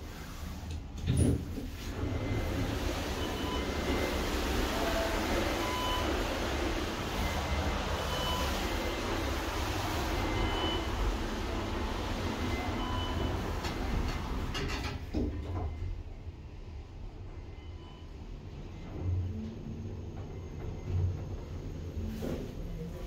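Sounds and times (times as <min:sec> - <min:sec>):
elevator rumble and hum: 0:00.0 - 0:23.0.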